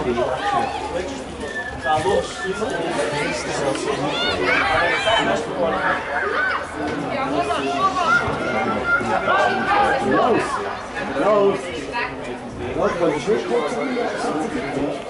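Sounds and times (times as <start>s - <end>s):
children chattering and calling out: 0.0s - 15.0s.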